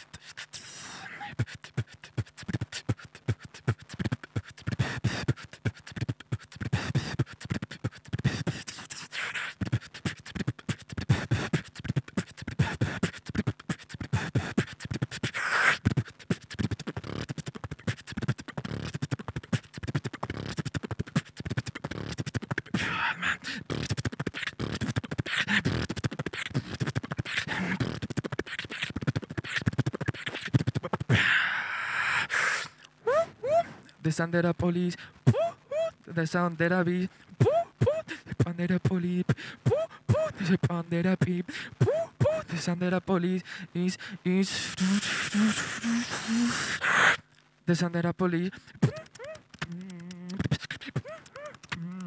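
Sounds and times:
person beatboxing into microphone: 0.0 - 52.0.

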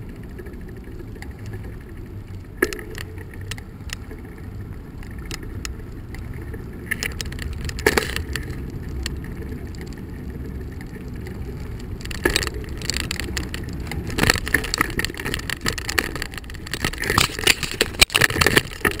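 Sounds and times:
wind and tyres on asphalt: 0.0 - 19.0
bicycle knocks and rattles: 5.1 - 19.0.

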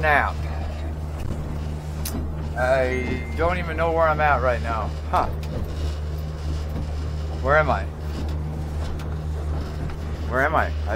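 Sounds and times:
outboard motor droning: 0.0 - 10.9
wind and water noise: 0.0 - 10.9.

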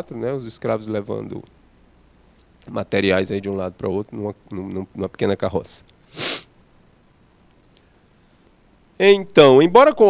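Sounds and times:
man sniffing in sharply: 6.1 - 6.6.

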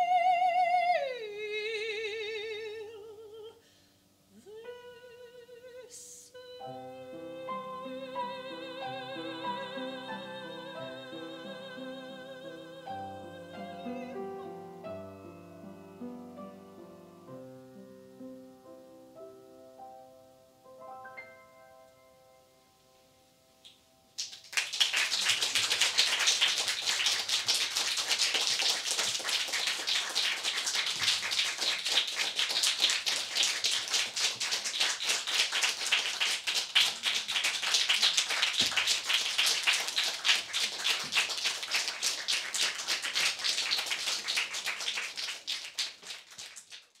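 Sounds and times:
audience applauding: 24.2 - 47.0.

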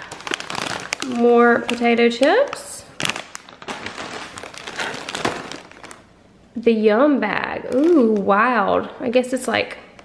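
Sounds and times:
snack packets crinkling: 0.0 - 6.2, 7.6 - 8.3.

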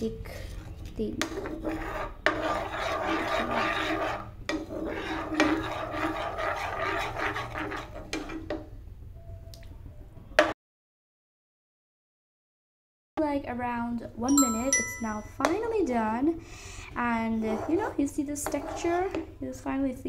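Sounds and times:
spoon scraping frying pan: 1.1 - 8.6, 17.2 - 19.4.

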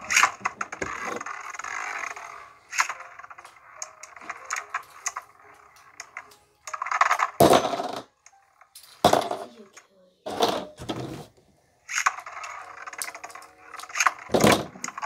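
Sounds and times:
spinning tops whirring and grinding: 0.0 - 8.1, 11.8 - 15.0.

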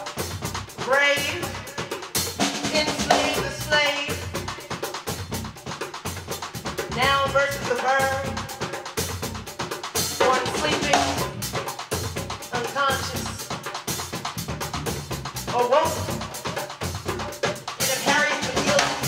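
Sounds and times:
busy jazz drum kit: 0.0 - 19.0
woman's voice into a microphone: 2.8 - 4.3, 10.2 - 11.2, 17.9 - 19.0.

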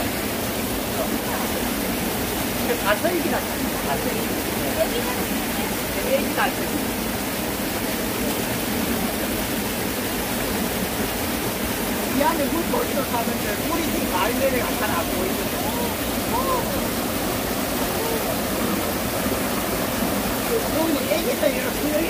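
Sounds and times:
stream running over stones: 0.0 - 22.0
voices: 12.1 - 22.0.

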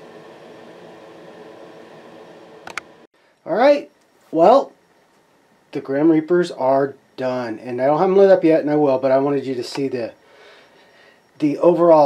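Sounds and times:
even hiss with faint hum: 0.0 - 12.0.

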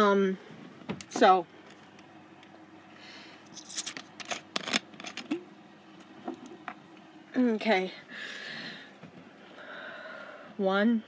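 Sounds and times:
woman breathing softly: 8.1 - 10.6.

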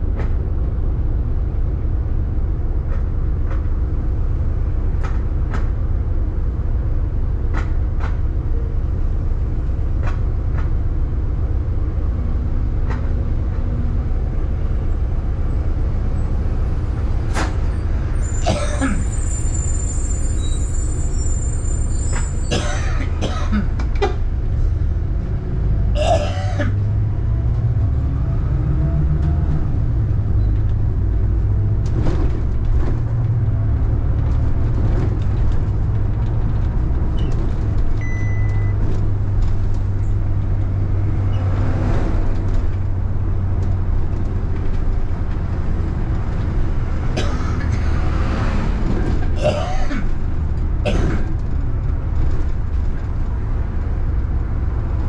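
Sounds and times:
bus engine drone: 0.0 - 55.0.

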